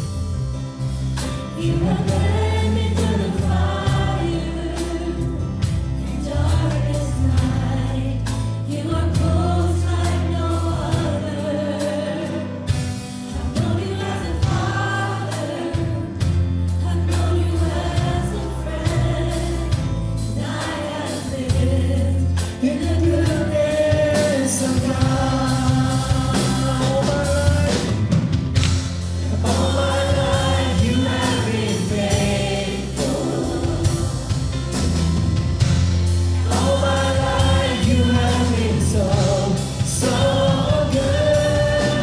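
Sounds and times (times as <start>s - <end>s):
worship band playing: 0.0s - 42.0s
congregation singing: 0.8s - 42.0s.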